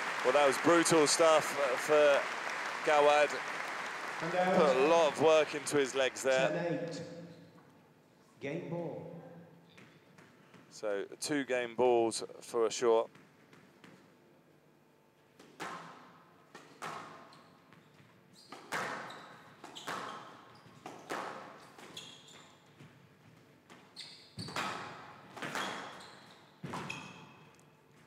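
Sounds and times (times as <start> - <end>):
shoes squeaking on wooden floor: 17.3 - 24.8, 25.4 - 27.5.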